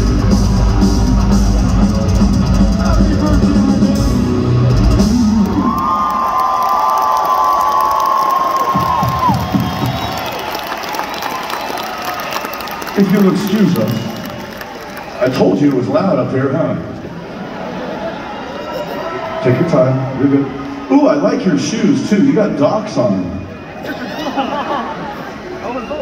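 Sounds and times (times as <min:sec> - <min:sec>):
heavy metal band playing live: 0:00.0 - 0:05.8
crowd cheering and whooping: 0:00.0 - 0:15.6, 0:17.1 - 0:21.3, 0:23.2 - 0:26.0.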